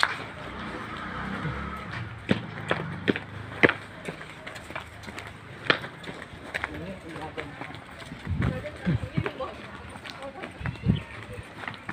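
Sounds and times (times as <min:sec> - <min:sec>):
footsteps on concrete: 0:00.0 - 0:11.9.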